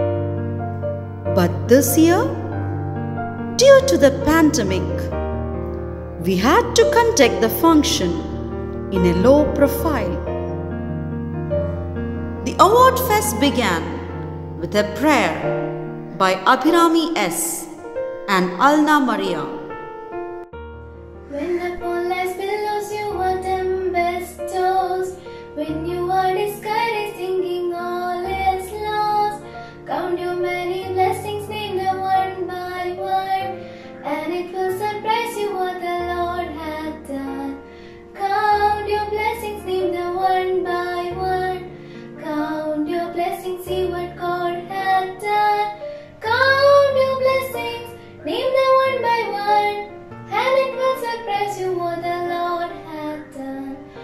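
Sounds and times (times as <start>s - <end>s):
instrumental backing: 0.0s - 54.0s.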